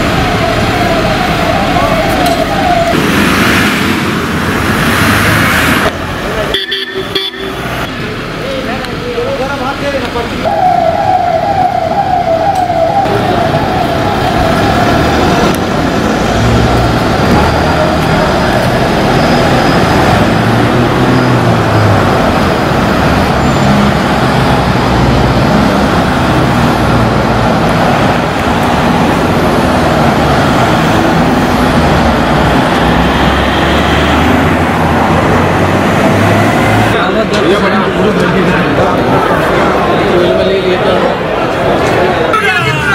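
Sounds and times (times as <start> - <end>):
cars driving past: 0.0 - 42.9
siren warbling: 10.4 - 15.5.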